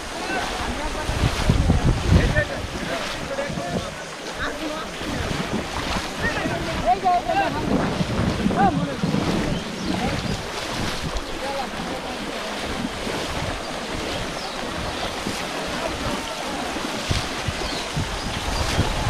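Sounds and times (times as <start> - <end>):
muddy water sloshing: 0.0 - 19.0
wind buffeting microphone: 0.0 - 19.0.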